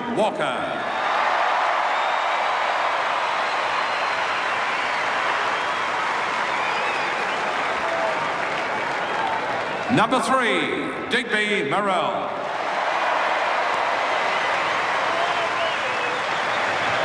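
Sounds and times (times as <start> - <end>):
stadium crowd applauding: 0.8 - 10.6, 12.4 - 17.0.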